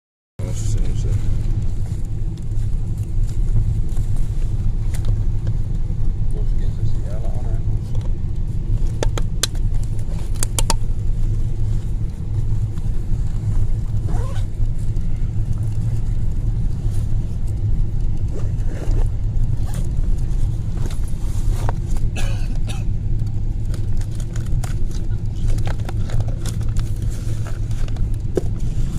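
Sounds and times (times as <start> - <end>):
airliner cabin rumble: 0.4 - 28.9.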